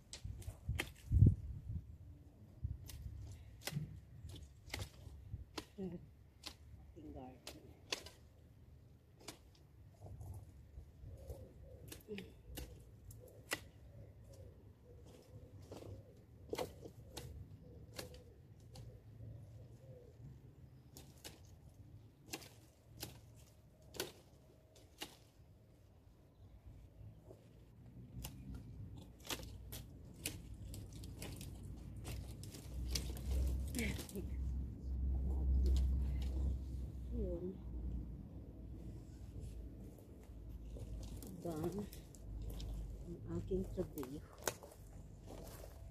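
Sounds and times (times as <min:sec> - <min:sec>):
twigs snapping: 0:00.0 - 0:01.4, 0:02.6 - 0:09.8, 0:11.1 - 0:19.1, 0:20.7 - 0:25.8, 0:27.8 - 0:36.7, 0:39.6 - 0:45.9.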